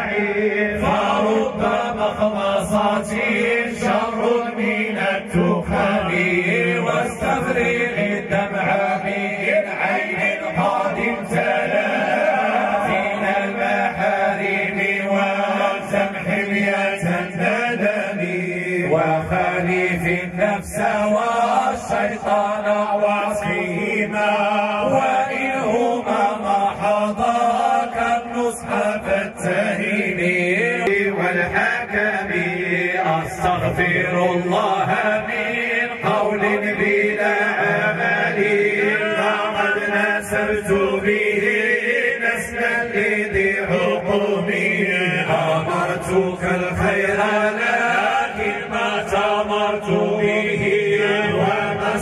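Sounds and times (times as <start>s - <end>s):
men chanting over loudspeaker: 0.0s - 52.0s.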